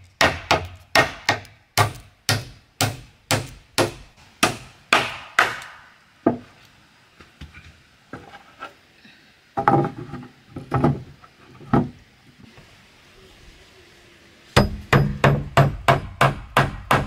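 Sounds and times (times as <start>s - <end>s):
hammer driving a nail into wood: 14.6s - 17.0s.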